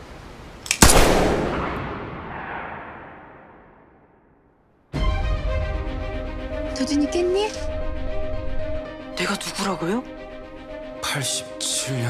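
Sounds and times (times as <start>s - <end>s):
gunshot with echoing tail: 0.8s - 4.4s.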